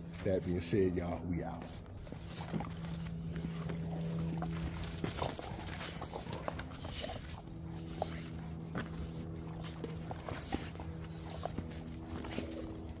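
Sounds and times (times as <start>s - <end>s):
dog paws scuffling: 0.0s - 13.0s
dog growling: 1.6s - 13.0s.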